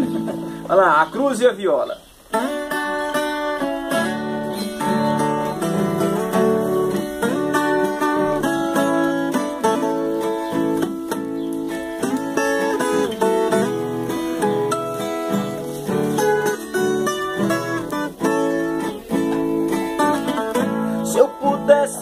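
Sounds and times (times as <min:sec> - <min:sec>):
plucked folk guitar melody: 0:00.0 - 0:22.0.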